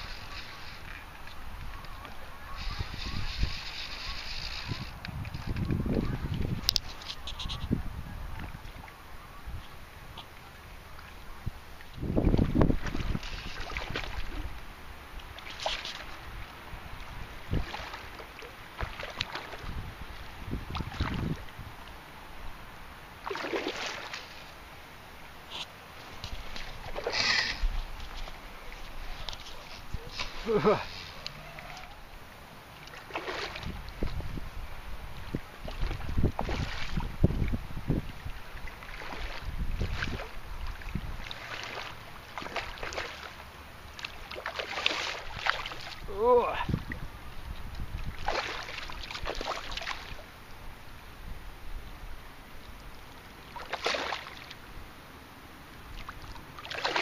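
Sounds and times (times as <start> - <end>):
wind rumbling on microphone: 0.0 - 10.2, 11.1 - 14.8, 15.9 - 18.2, 18.8 - 22.8, 33.4 - 42.8, 45.2 - 53.0
fish thrashing and splashing: 23.2 - 24.4, 32.8 - 33.8, 35.6 - 37.2, 38.7 - 46.0, 48.0 - 50.2, 53.6 - 54.5, 56.0 - 57.0.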